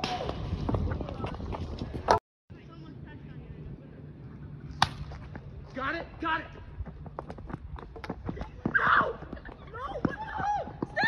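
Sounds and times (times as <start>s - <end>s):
bat hitting plastic ball: 4.8s - 5.2s.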